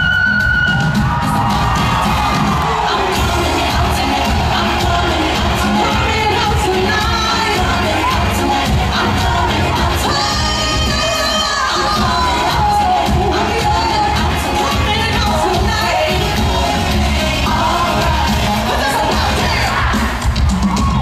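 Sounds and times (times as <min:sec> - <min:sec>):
crowd cheering and whooping: 0:00.0 - 0:21.0
woman singing over band: 0:02.6 - 0:20.3.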